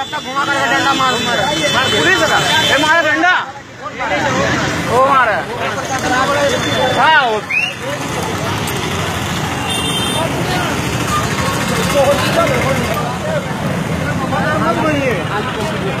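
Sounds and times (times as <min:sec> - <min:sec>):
people talking: 0:00.0 - 0:16.0
street traffic: 0:00.0 - 0:16.0.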